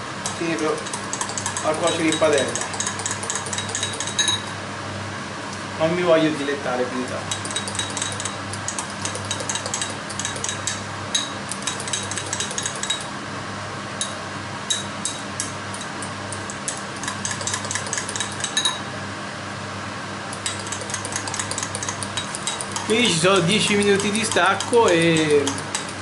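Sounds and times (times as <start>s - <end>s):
fork clinking against glass: 0.8s - 4.5s, 16.7s - 18.8s, 20.4s - 23.0s.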